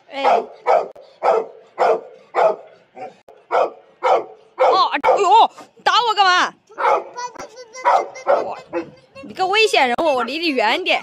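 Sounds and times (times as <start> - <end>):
dog barking: 0.2 - 5.4, 6.8 - 7.2, 7.8 - 9.0.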